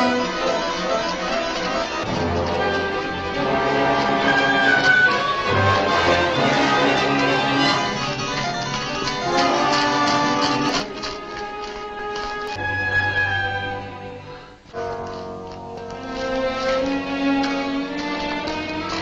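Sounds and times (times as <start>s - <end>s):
orchestral music: 0.0s - 19.0s.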